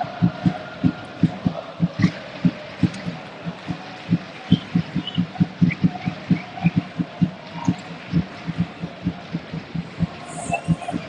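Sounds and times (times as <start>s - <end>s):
crowd background noise: 0.0s - 11.0s
drums beating fast rhythm: 0.0s - 11.0s.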